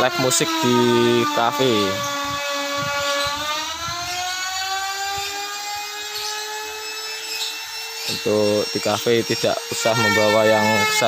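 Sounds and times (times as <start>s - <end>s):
power tool motor whine: 0.0s - 11.0s.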